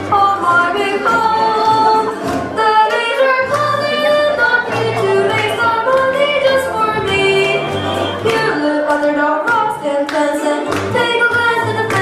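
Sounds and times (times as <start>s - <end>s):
musical accompaniment with bass: 0.0s - 12.0s.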